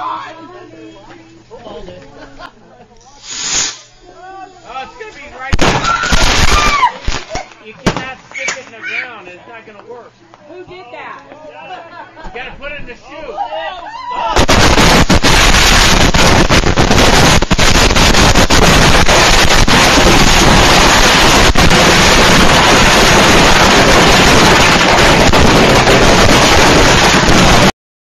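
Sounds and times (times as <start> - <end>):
firework explosions: 3.2 - 4.0, 5.3 - 8.6, 14.3 - 27.8.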